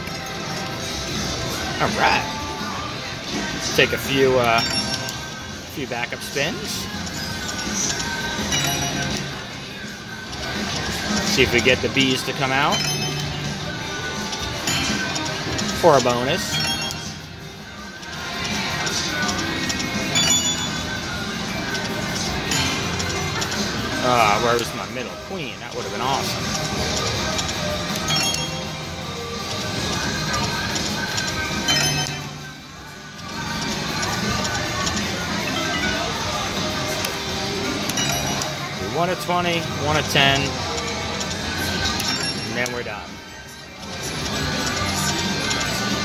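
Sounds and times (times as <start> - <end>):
casino hubbub: 0.0 - 46.0
slot machine game music: 0.0 - 46.0
bell-like chimes: 4.5 - 5.2, 16.4 - 17.2, 20.2 - 20.9, 28.1 - 28.8, 31.7 - 32.4, 37.9 - 38.6, 42.0 - 44.0.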